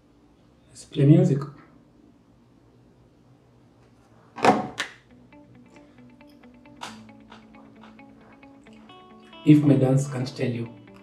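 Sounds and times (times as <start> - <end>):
faint music with held notes: 5.0 - 11.0.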